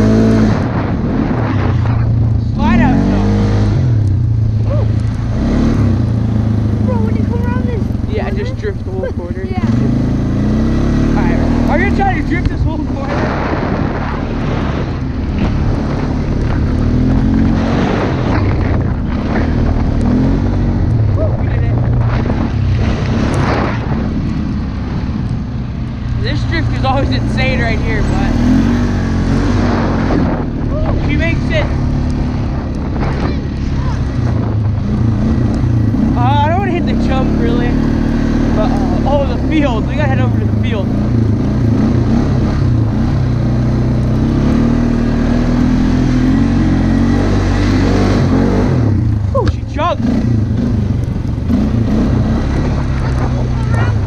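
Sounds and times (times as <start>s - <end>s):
atv engine running hard: 0.0s - 54.0s.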